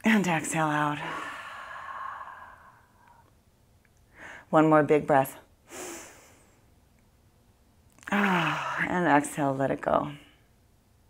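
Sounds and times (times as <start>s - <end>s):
woman exhaling: 1.0s - 3.2s, 8.0s - 8.9s.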